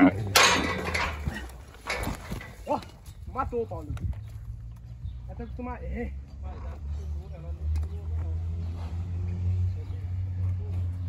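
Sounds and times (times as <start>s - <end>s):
scuffling: 0.5s - 4.4s.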